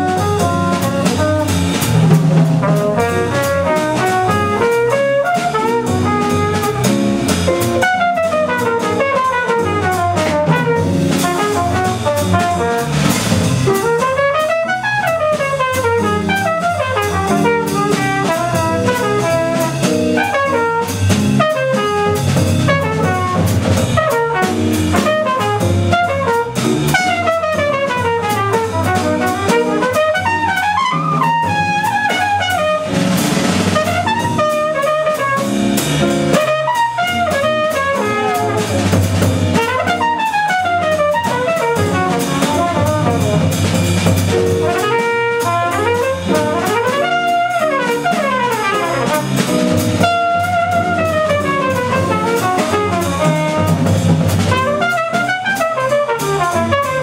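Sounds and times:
double bass: 0.0 - 57.0
drum kit with cymbals: 0.0 - 57.0
trumpet solo: 0.0 - 57.0.

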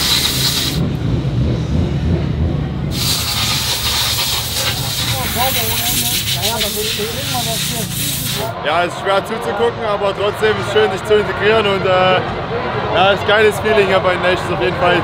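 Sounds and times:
compressed air hissing: 0.0 - 0.8, 2.9 - 8.6.

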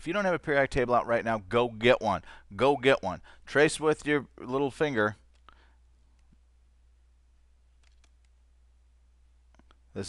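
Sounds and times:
person speaking: 0.0 - 6.5
low steady hum: 0.0 - 10.0.

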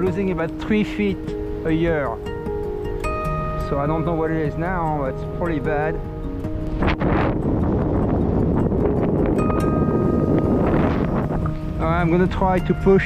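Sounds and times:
fingerstyle acoustic guitar music: 0.0 - 13.0
wind rushing over microphone: 0.0 - 13.0.

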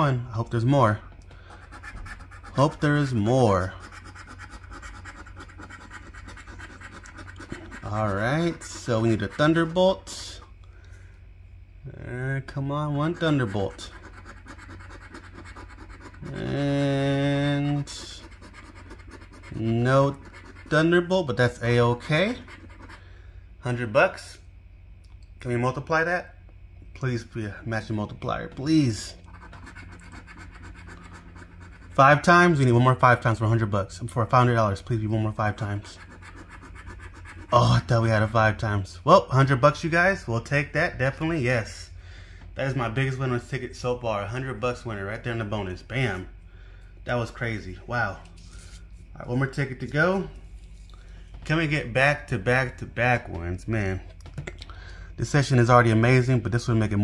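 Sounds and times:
coin scraping scratch card: 1.5 - 9.8, 13.0 - 21.0, 21.8 - 23.0, 29.1 - 32.6, 35.4 - 38.3.

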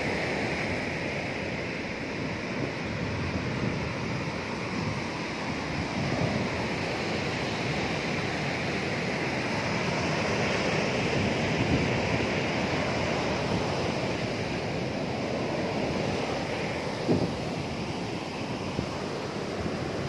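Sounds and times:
sea surf breaking on beach: 0.0 - 20.0
wind buffeting microphone: 0.7 - 20.0.

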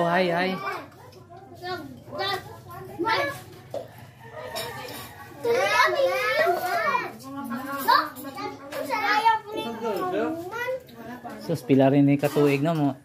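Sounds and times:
children talking and calling out: 0.0 - 11.6.

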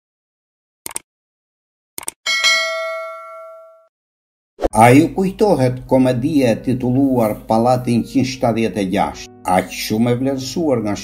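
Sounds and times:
quick clicks: 0.8 - 1.1, 2.0 - 2.2
bell ding: 2.3 - 3.9.

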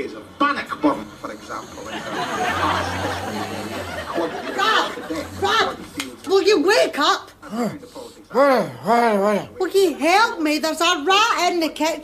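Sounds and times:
indistinct chatter: 0.0 - 8.6.

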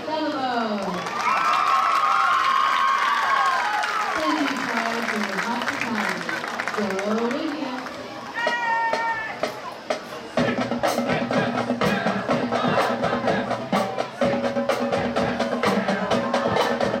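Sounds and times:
marching band playing: 4.4 - 17.0.

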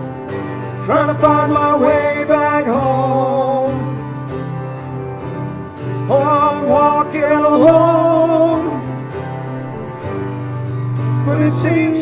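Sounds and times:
acoustic guitars: 0.0 - 12.0
grand piano: 0.0 - 12.0
man singing: 0.8 - 4.0, 6.1 - 9.0, 11.2 - 12.0.

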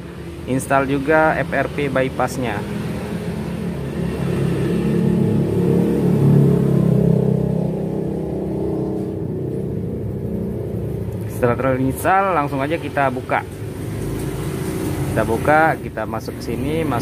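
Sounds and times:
vehicle engine humming: 0.0 - 17.0.

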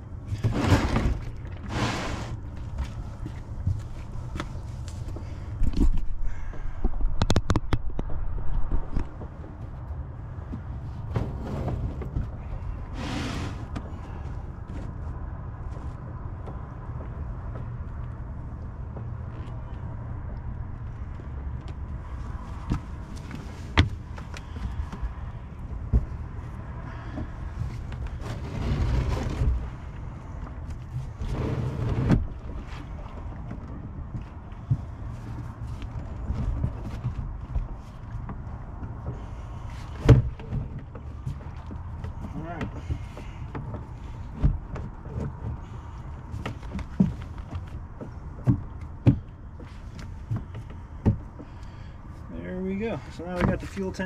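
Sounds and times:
steady low rumble: 0.0 - 54.0
plastic fuel tank shifted: 0.3 - 2.5, 11.0 - 14.0, 27.8 - 30.0.

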